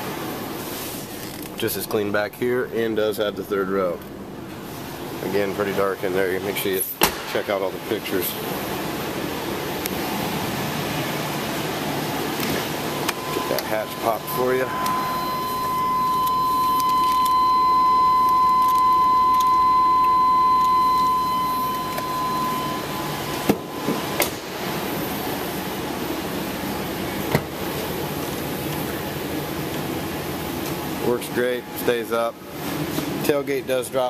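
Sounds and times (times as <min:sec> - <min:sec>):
electronic warning tone: 0:12.8 - 0:24.6.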